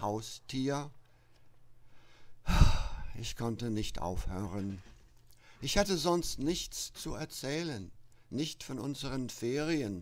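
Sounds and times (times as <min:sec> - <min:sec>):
man breathing into microphone: 0:01.8 - 0:03.2.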